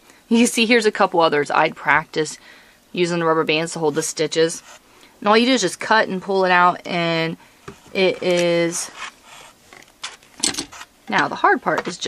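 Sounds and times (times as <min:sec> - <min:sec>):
yarn rustling on plastic loom: 0:07.7 - 0:12.0.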